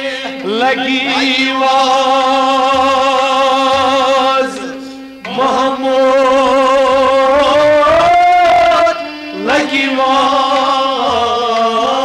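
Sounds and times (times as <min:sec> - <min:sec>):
devotional singing held note: 0:00.0 - 0:12.0.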